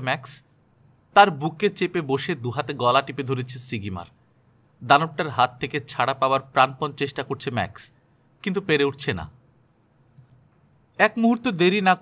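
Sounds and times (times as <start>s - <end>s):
man narrating: 0.0s - 0.5s, 1.1s - 4.2s, 4.8s - 9.3s, 11.0s - 12.0s.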